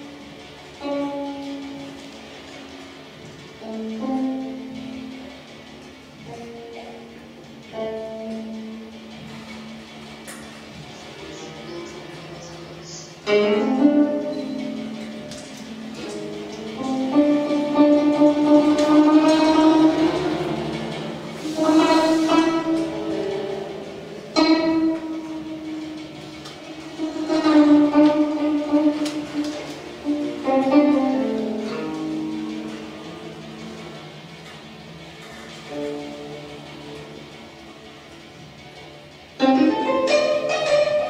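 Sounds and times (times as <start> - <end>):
zither plucked notes: 0.0 - 41.0.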